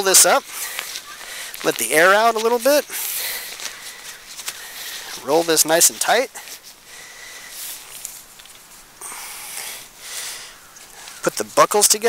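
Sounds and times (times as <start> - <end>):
backpack fabric rustling: 0.1 - 9.0.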